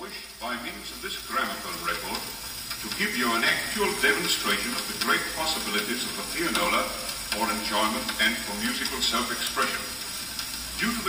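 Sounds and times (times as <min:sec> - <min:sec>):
man speaking on old record: 0:00.0 - 0:11.0
record surface crackle and hiss: 0:00.0 - 0:11.0.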